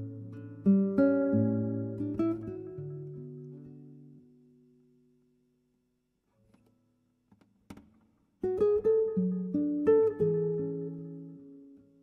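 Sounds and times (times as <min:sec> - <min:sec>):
soft plucked guitar notes: 0:00.0 - 0:05.2, 0:07.7 - 0:12.0.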